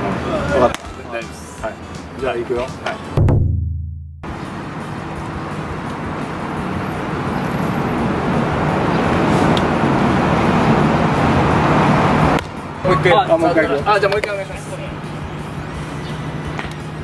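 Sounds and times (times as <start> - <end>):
road traffic rushing hum: 0.0 - 3.2, 4.2 - 17.0.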